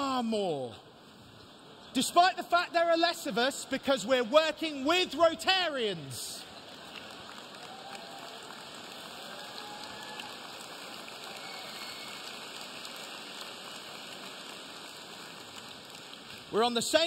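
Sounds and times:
audience applauding: 6.4 - 17.0.

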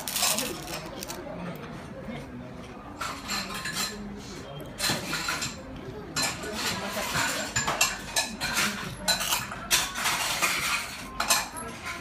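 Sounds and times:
tableware clinks: 4.7 - 12.0.

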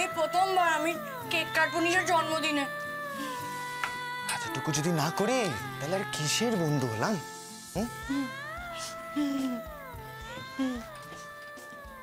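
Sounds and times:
woman humming mmm: 7.8 - 11.4.

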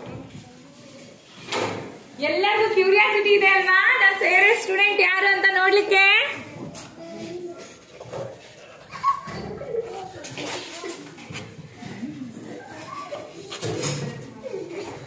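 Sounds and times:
children talking and murmuring: 0.0 - 15.0.

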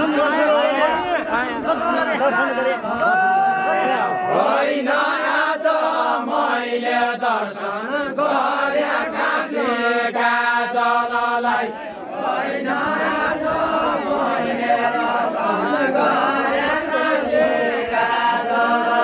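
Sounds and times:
men singing in chorus: 3.9 - 19.0.

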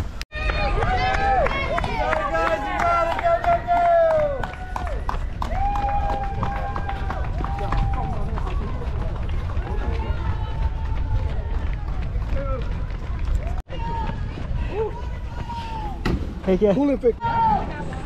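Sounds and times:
low wind buffeting: 0.0 - 17.1
spectators cheering: 0.3 - 14.2.

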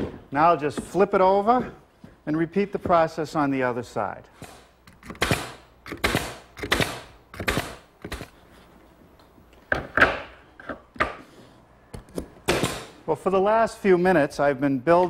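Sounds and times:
nail gun shots: 4.4 - 8.3, 12.5 - 13.0.

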